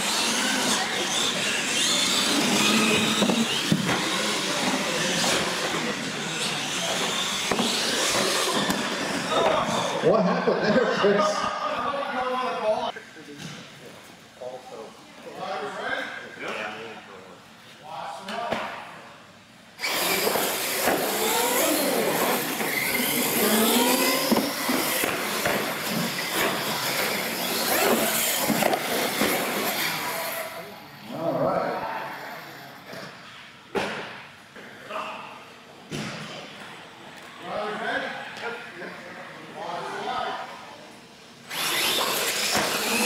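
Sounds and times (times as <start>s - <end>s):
electric toy truck motors whining: 0.0s - 10.0s, 19.8s - 31.2s, 41.5s - 43.0s.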